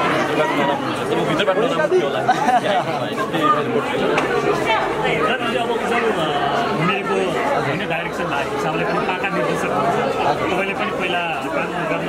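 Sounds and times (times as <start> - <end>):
crowd chatter: 0.0 - 12.0
people talking: 0.0 - 12.0.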